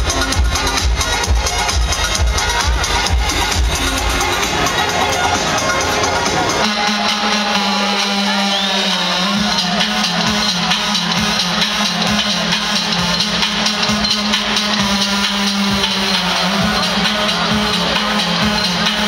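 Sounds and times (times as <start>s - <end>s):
drum beat: 0.0s - 5.1s, 6.5s - 19.0s
heavy steady bass: 0.0s - 19.0s
loud live music over sound system: 0.0s - 19.0s.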